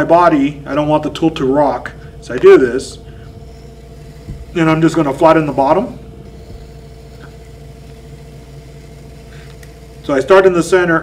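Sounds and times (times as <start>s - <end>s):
potter's wheel motor hum: 0.0s - 11.0s.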